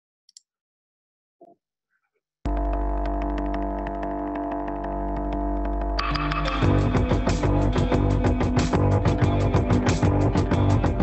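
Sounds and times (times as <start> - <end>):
deep bass drone: 2.5 - 11.0
sustained rock chord: 2.5 - 11.0.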